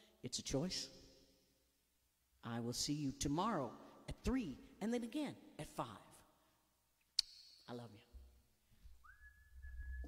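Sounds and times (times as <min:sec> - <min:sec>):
high steady whistling tone: 0:08.8 - 0:10.0.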